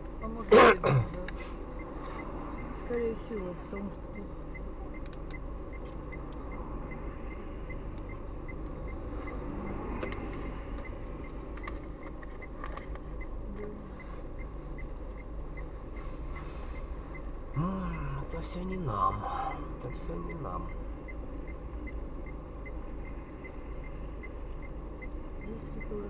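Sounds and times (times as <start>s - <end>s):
car interior hum idling: 0.0s - 26.0s
faint regular ticking: 0.0s - 26.0s
passing traffic: 0.0s - 26.0s
person speaking: 17.6s - 20.8s.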